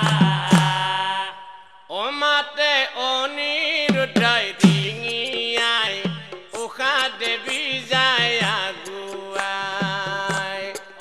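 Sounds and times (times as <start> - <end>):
man chanting devotional line: 0.0 - 11.0
accompanying music: 3.9 - 11.0.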